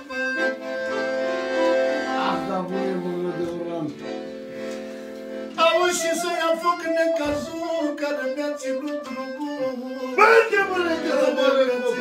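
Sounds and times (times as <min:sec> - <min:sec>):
piano accordion playing: 0:00.0 - 0:12.0.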